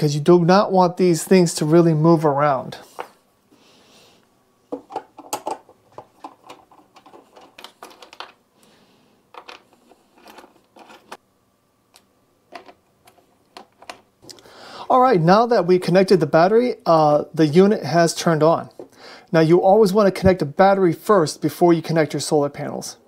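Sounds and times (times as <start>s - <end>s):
cable terminals clicking and clattering: 4.7s - 8.4s, 9.3s - 11.2s, 11.9s - 14.1s.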